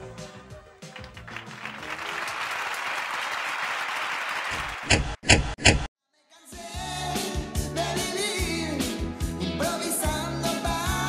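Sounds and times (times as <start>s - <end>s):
synth-pop band music: 0.0s - 1.7s, 6.4s - 11.0s
audience applause: 0.8s - 4.9s.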